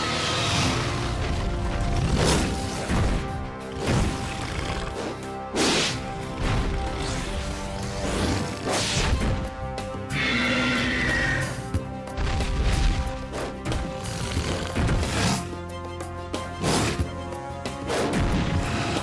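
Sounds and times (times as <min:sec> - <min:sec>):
dramatic action score: 0:00.0 - 0:19.0.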